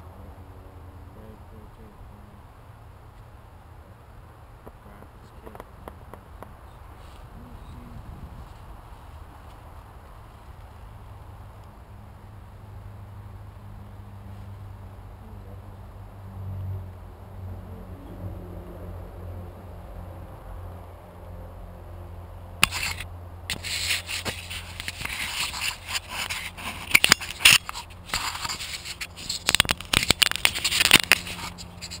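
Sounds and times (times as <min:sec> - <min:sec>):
low steady hum: 0:00.0 - 0:32.0
camera handling scraping and knocking: 0:22.6 - 0:32.0.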